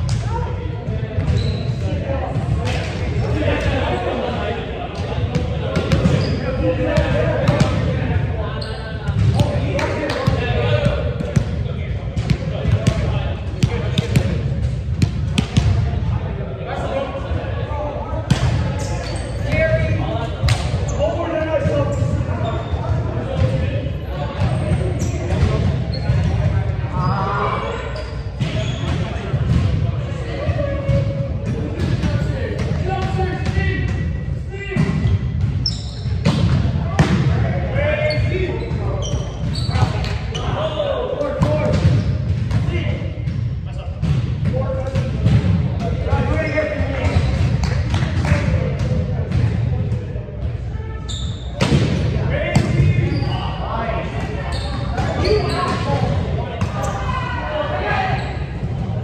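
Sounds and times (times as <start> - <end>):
players' voices echoing: 0.0 - 59.0.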